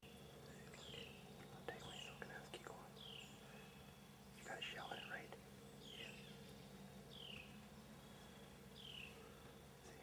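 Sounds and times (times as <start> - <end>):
bird chirping: 0.0 - 10.0
low steady hum: 0.0 - 10.0
soft whispering: 0.4 - 3.6, 4.4 - 6.3, 9.1 - 10.0.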